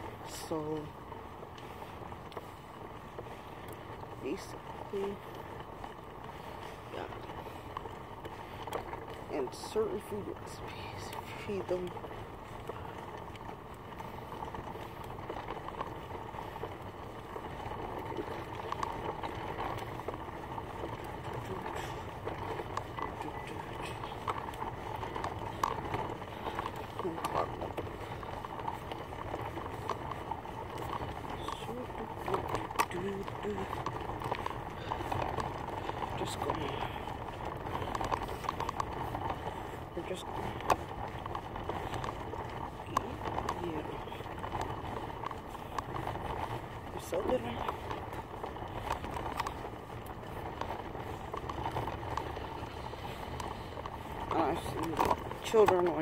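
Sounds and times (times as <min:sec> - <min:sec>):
stroller wheels rolling on asphalt: 0:00.0 - 0:56.0
walking footsteps: 0:00.0 - 0:56.0
light clicks and taps: 0:01.5 - 0:56.0.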